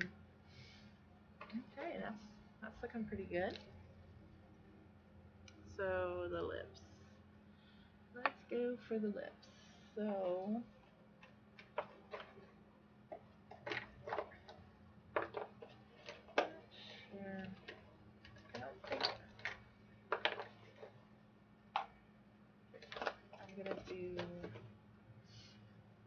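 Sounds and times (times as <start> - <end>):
small objects clicking and knocking: 13.1 - 16.6, 17.4 - 21.0, 22.8 - 24.6.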